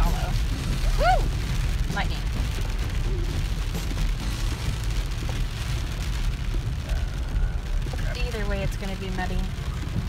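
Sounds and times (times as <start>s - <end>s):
engine and tyres rumbling: 0.0s - 10.0s
rain on vehicle windshield: 0.0s - 10.0s.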